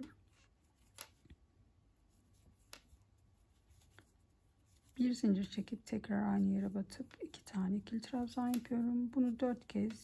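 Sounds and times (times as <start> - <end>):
crochet hook clicking: 8.4 - 8.8.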